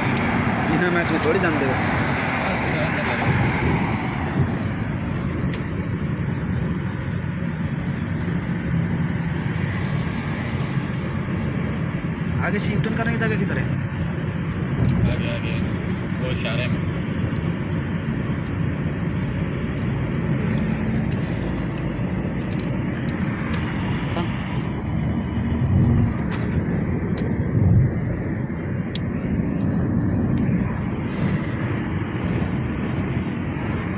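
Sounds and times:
tyre and wind rumble: 0:00.0 - 0:12.4, 0:16.8 - 0:33.9
low swells: 0:22.8 - 0:33.9.

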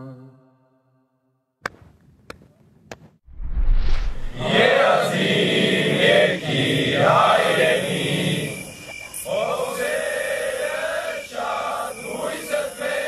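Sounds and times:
men chanting in unison: 0:04.4 - 0:13.0.

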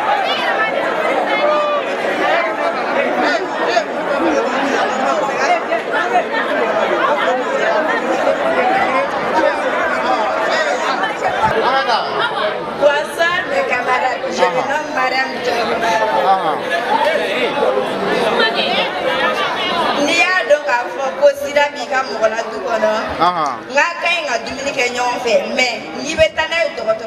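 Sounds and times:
crowd chattering: 0:00.0 - 0:27.0.

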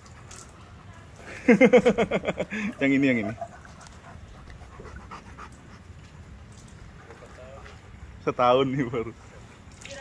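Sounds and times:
dog panting softly: 0:03.3 - 0:06.0.

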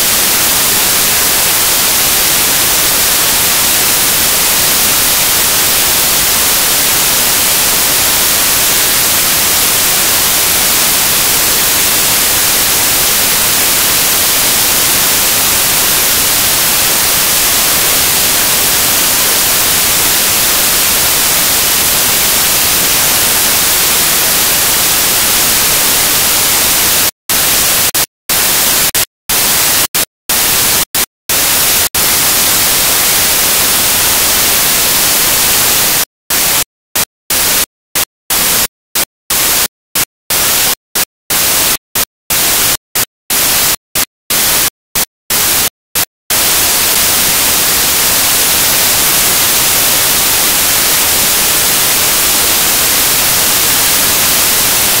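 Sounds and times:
loud static hiss: 0:00.0 - 0:55.0.

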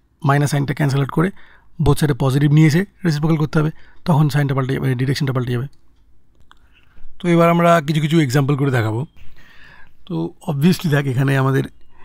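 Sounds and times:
man speaking: 0:00.2 - 0:05.7, 0:07.2 - 0:09.2, 0:10.0 - 0:11.8.

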